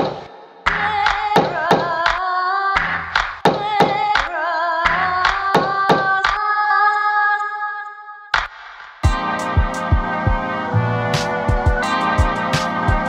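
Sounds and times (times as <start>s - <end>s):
sampled female singing: 0.0s - 8.4s
drum beat with deep kicks: 9.0s - 13.0s.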